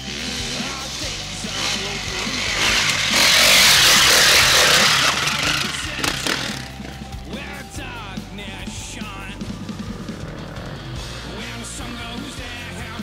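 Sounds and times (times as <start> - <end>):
dirt bike engine revving: 0.0 - 13.0
rock music: 0.0 - 13.0.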